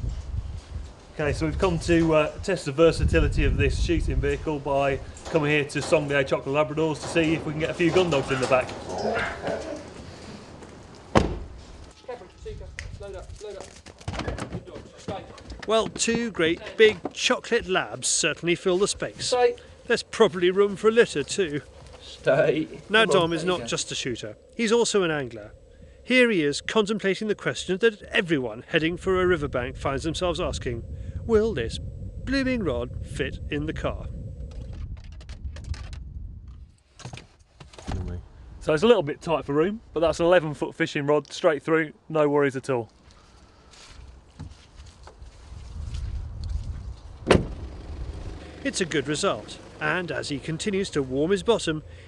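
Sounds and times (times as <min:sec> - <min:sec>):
quiet voices: 0:07.0 - 0:10.0
car door slamming shut: 0:11.1 - 0:11.5, 0:47.2 - 0:47.7
low rumble: 0:19.1 - 0:36.7.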